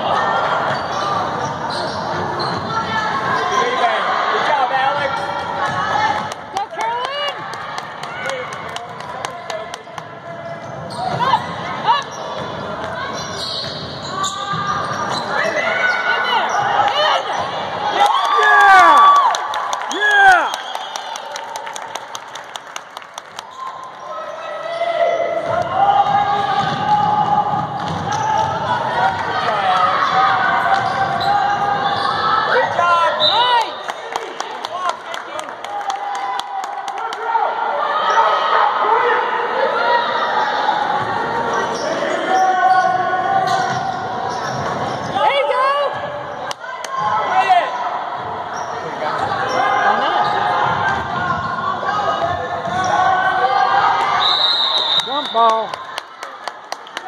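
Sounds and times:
spectators' voices: 0.0s - 57.0s
sneakers squeaking: 0.4s - 4.0s, 9.8s - 17.8s, 30.0s - 33.8s, 40.9s - 46.4s, 48.2s - 53.4s.

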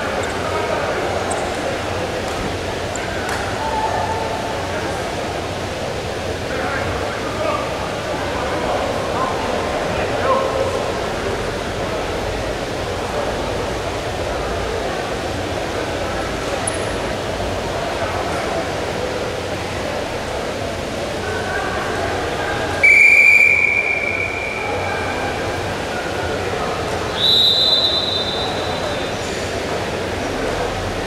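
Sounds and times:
arena crowd noise: 0.0s - 31.0s.

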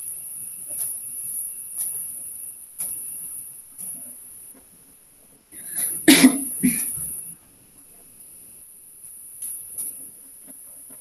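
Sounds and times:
person coughing: 5.6s - 7.0s.

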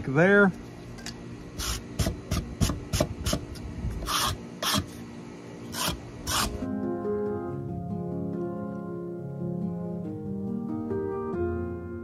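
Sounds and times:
wire brush scraping foam: 4.0s - 5.0s, 5.7s - 6.6s
soft music with plucked notes: 6.6s - 12.0s.

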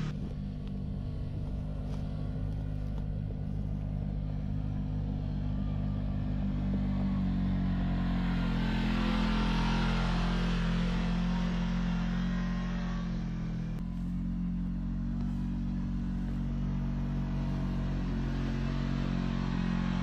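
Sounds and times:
utility vehicle engines running: 0.0s - 20.0s.

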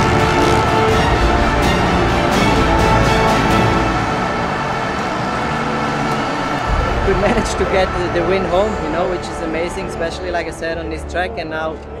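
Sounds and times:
motocross bike engine running: 4.2s - 10.4s.

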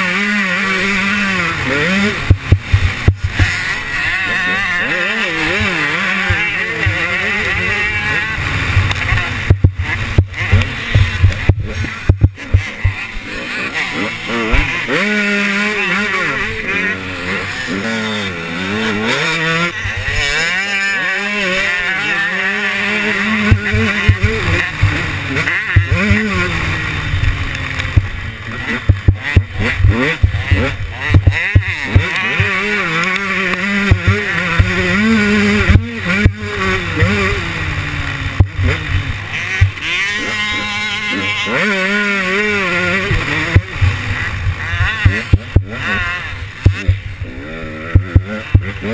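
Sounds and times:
motocross bike engine revving: 0.0s - 48.9s.

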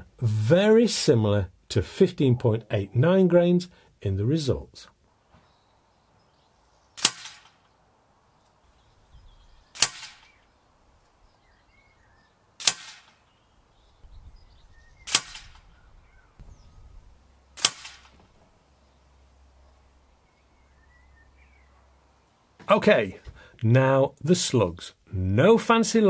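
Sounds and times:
air rifle shots: 7.0s - 7.7s, 9.7s - 10.4s, 12.6s - 13.3s, 15.0s - 15.7s, 17.6s - 18.3s.

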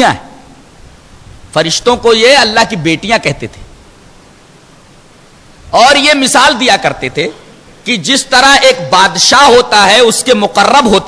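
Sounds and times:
man talking: 0.0s - 0.3s, 1.5s - 3.6s, 5.7s - 11.0s
faint steady hiss: 0.0s - 11.0s.

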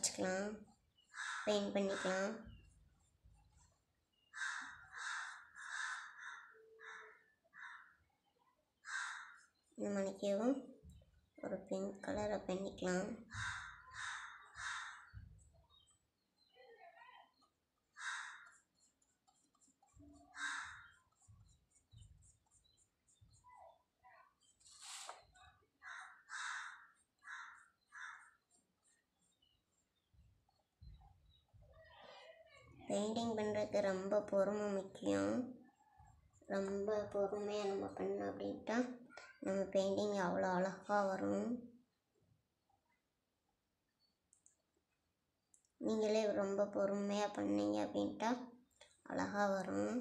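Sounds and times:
crow cawing: 1.1s - 2.1s, 4.3s - 8.0s, 8.8s - 9.5s, 13.3s - 15.2s, 17.9s - 18.6s, 20.2s - 21.0s, 25.8s - 28.4s.

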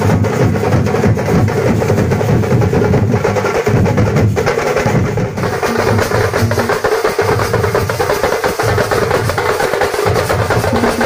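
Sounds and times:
drummers beating frame drums: 0.0s - 11.0s.

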